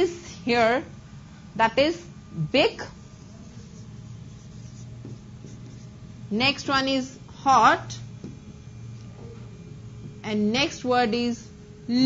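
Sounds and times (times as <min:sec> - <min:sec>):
steady low hum: 0:00.0 - 0:12.0
marker pen scratching on whiteboard: 0:02.8 - 0:06.9.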